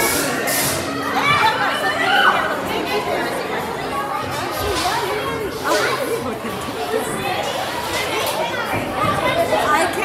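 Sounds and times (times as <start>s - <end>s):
chatter of many voices: 0.0s - 10.0s.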